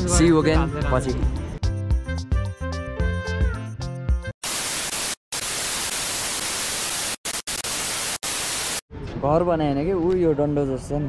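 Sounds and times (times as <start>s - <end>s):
music: 0.0s - 4.4s
television static hiss: 4.4s - 8.8s.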